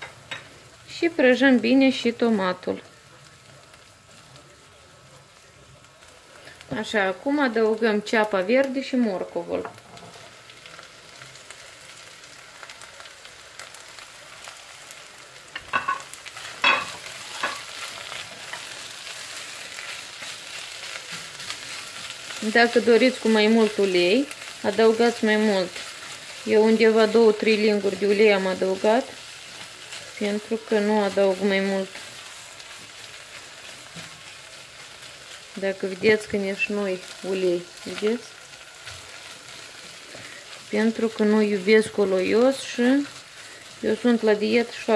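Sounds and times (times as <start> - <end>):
oil sizzling in a pot: 0.0 - 44.9.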